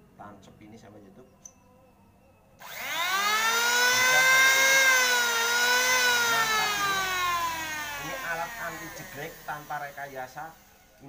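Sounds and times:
angle grinder motor whine: 2.6 - 11.0.

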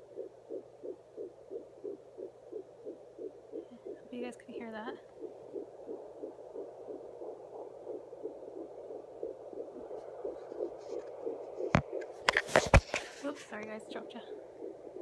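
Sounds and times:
doppler heartbeat whooshing pulses: 0.0 - 15.0
phone dropped knocks and thumps: 11.7 - 13.0.

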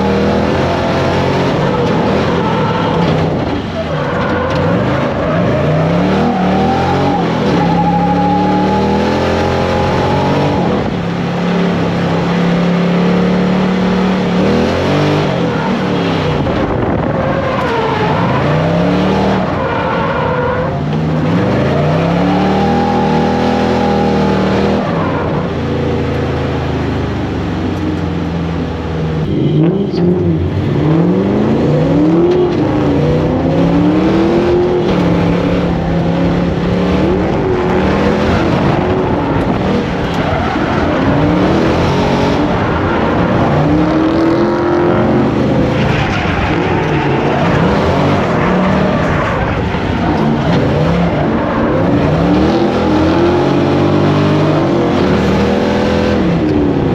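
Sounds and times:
car engine revving: 0.0 - 56.9
tyre and road noise: 0.0 - 56.9.

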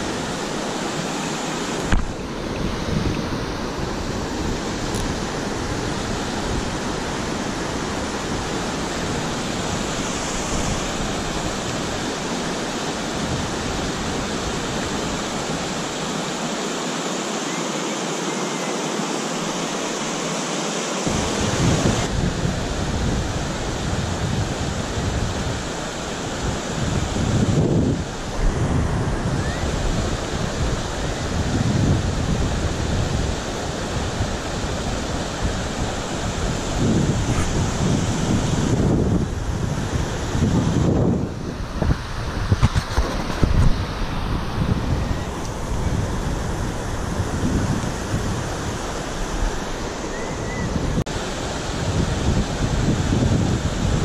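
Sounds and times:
wind buffeting microphone: 0.0 - 16.0, 21.1 - 54.0
river water rushing over weir: 0.0 - 54.0.

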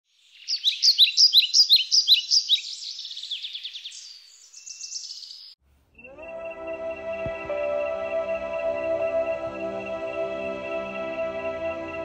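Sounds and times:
songbird singing trills: 0.2 - 7.4.

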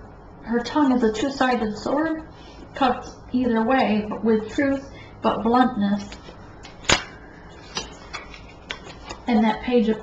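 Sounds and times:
cards clicking: 6.0 - 9.2.

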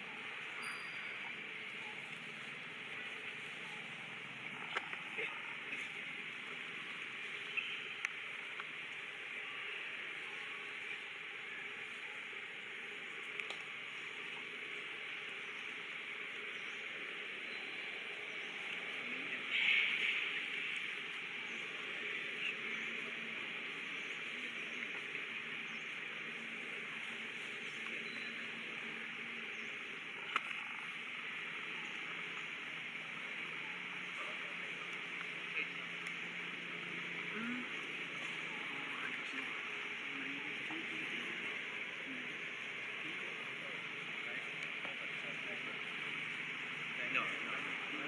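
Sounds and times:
crackle: 0.0 - 36.3
faint clicks: 13.2 - 14.4, 30.2 - 30.9.

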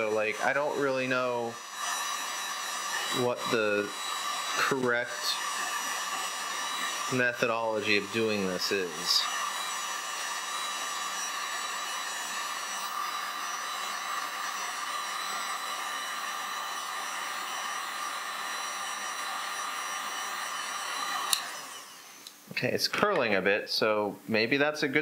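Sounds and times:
heat gun blowing air: 0.0 - 22.4.

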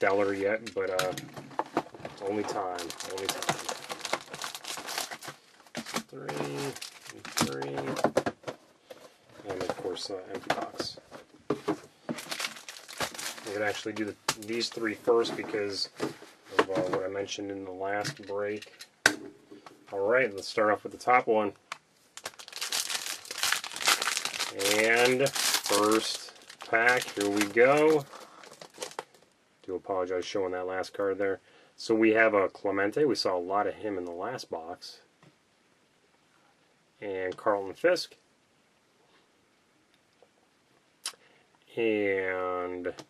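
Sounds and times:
foil wrappers crinkling: 2.1 - 7.8, 12.1 - 14.9, 22.2 - 29.3.

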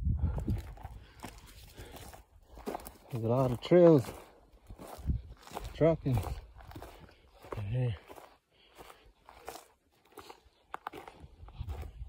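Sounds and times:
footsteps crunching through dry grass: 0.2 - 12.0.

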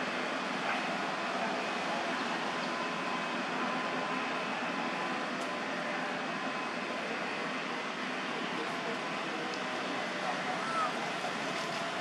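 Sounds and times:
outdoor background rush: 0.0 - 12.0.

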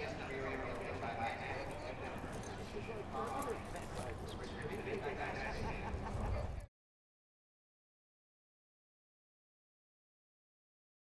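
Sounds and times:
horse sounds: 0.0 - 6.6
people's voices: 0.0 - 6.7.

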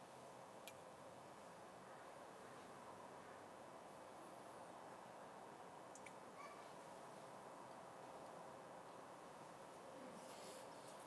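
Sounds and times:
soft rustle: 9.2 - 11.0.

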